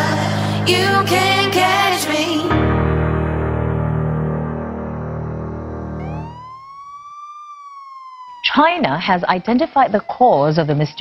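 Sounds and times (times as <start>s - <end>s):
music: 0.0s - 6.4s
siren wail: 5.1s - 11.0s.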